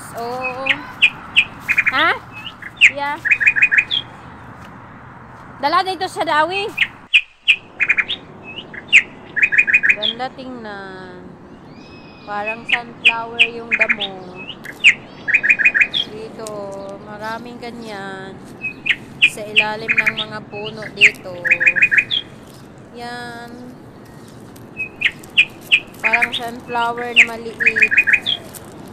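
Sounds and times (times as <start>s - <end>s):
small birds chirping: 0.0s - 28.9s.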